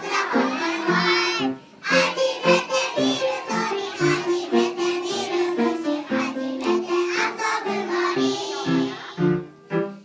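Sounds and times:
children singing together: 0.0s - 9.6s.

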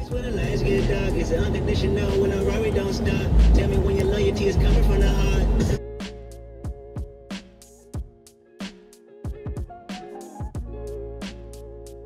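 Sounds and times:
music: 0.0s - 12.0s
car road and wind noise: 0.1s - 5.8s.

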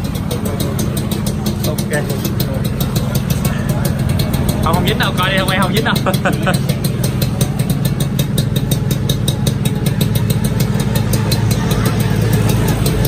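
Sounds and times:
two-stroke engine idling: 0.0s - 13.0s.

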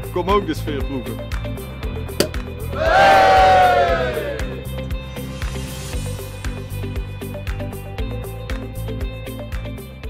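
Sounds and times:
music with steady beat: 2.2s - 2.6s
group of people cheering: 2.7s - 4.7s.

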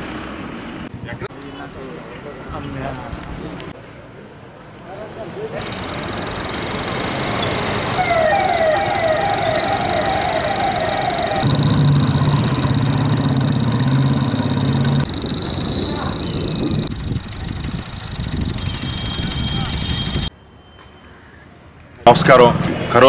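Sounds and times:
traffic noise: 0.0s - 23.0s
thin high whine: 5.6s - 12.0s.

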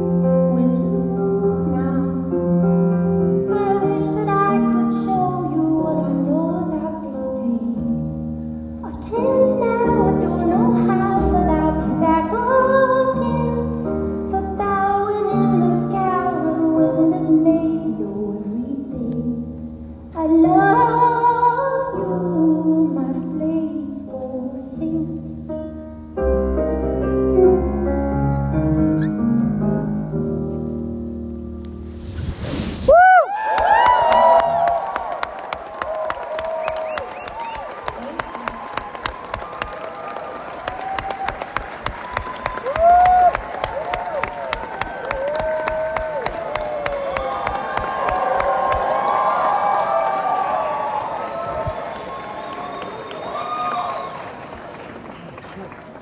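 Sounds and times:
audience cheering and whistling: 32.8s - 54.8s
audience applause: 33.2s - 56.0s.

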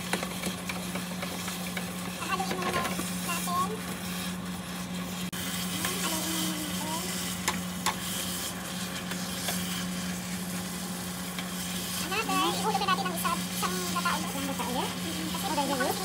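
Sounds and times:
food sizzling in a pan: 0.0s - 16.0s
spatula stirring: 0.0s - 16.0s
steady low hum: 0.0s - 16.0s.

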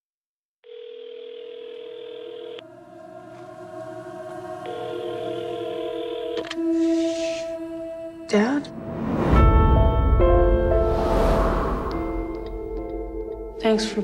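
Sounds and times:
telephone ringback tone: 0.6s - 2.6s, 4.7s - 6.6s
low sustained drone: 2.6s - 14.0s.

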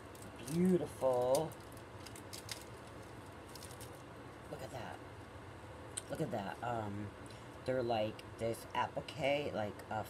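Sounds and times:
paper packaging rustling: 0.0s - 4.1s.

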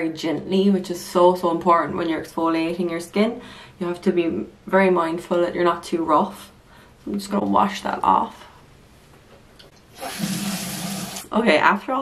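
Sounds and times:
water running from a tap: 9.9s - 11.3s.

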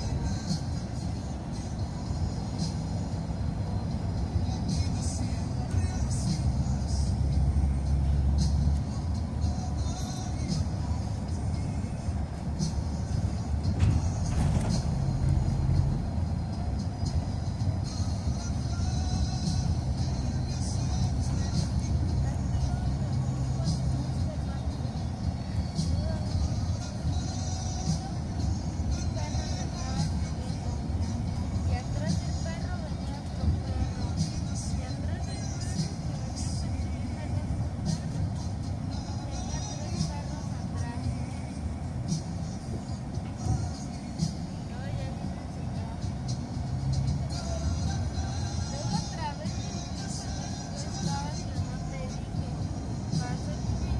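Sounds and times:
music: 0.0s - 53.9s
road and engine noise: 0.0s - 53.9s.

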